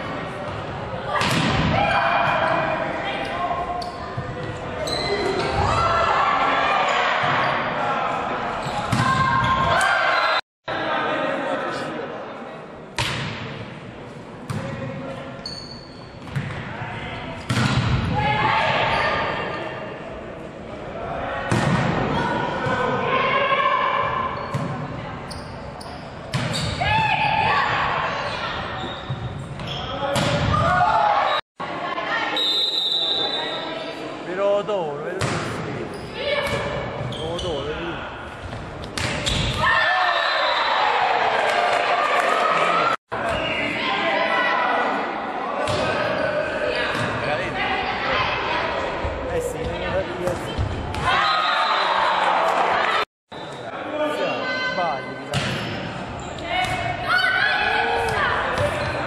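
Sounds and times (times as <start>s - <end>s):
people shouting and calling out: 56.4s - 59.0s.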